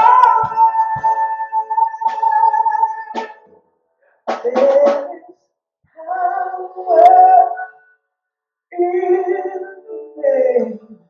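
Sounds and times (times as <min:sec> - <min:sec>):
woman singing into a microphone: 0:00.0 - 0:03.5.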